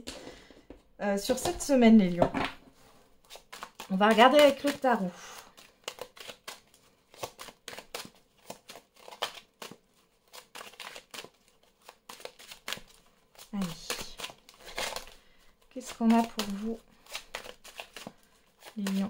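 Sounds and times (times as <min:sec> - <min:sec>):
cards being shuffled: 0:03.2 - 0:19.0.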